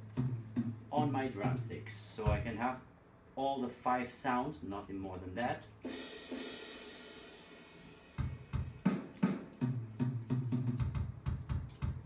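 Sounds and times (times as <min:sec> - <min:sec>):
electronic drum hits: 0:02.2 - 0:02.6
electronic cymbal crash: 0:05.9 - 0:08.5.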